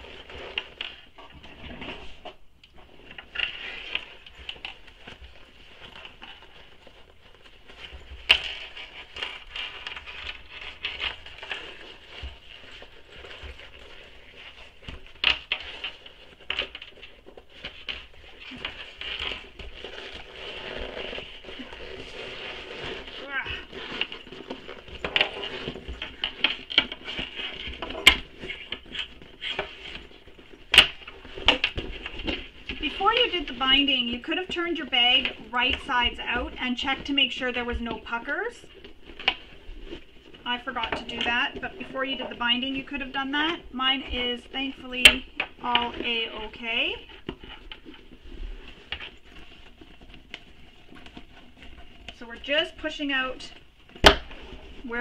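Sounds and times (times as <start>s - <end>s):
vinyl and fabric rustling: 0.0s - 55.0s.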